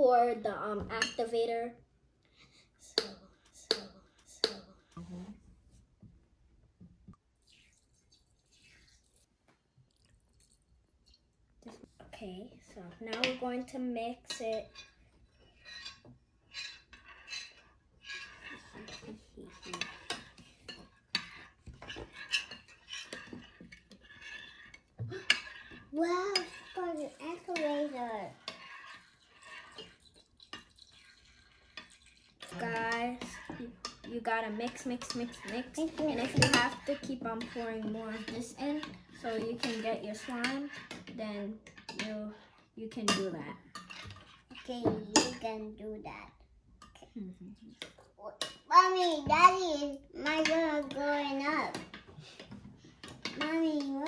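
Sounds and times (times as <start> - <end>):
spoon scraping bowl of slime: 7.4 - 9.3, 12.8 - 45.4
liquid pouring: 7.4 - 11.3, 29.0 - 32.6.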